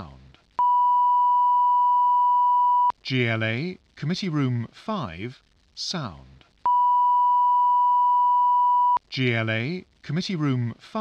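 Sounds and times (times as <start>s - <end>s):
person speaking: 0.0s - 0.4s.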